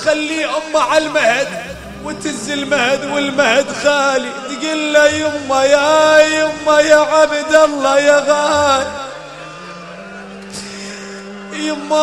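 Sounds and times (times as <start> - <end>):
steady low drone: 0.5 - 11.4.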